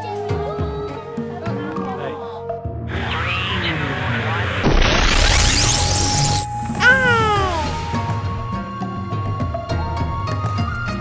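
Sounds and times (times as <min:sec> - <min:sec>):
background music: 0:00.0 - 0:03.9, 0:05.8 - 0:11.0
child squealing: 0:06.8 - 0:08.0.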